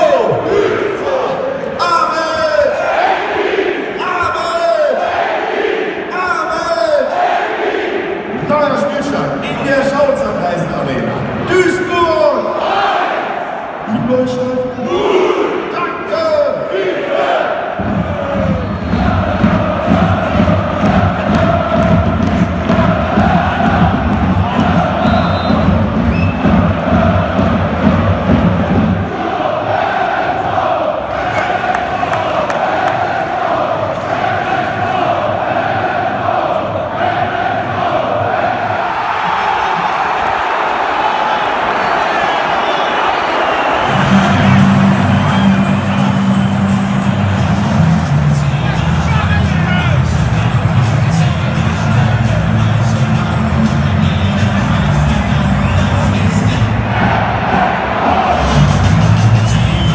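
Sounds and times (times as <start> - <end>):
stadium crowd chanting and singing: 0.0 - 59.9.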